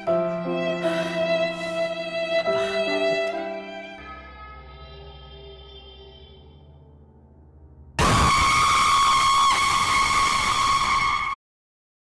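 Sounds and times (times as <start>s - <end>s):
harsh shriek sound effect: 8.0s - 11.4s.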